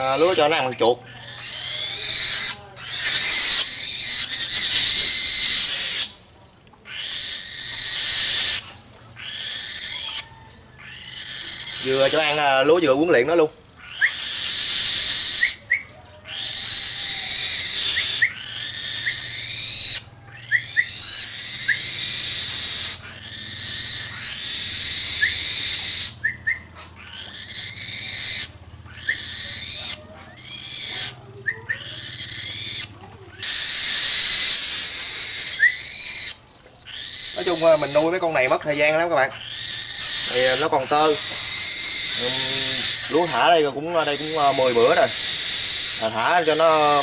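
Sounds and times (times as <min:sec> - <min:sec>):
falcon calling: 0:00.0 - 0:06.2, 0:06.8 - 0:47.0.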